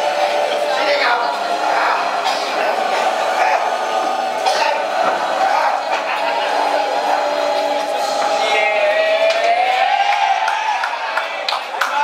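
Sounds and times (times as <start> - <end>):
background music: 0.0 - 12.0
voices and crowd noise: 0.0 - 12.0.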